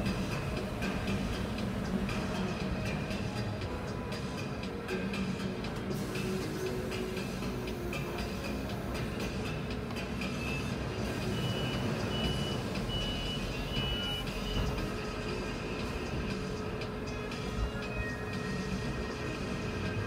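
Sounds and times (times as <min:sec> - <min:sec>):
bus engine running: 0:00.0 - 0:20.0.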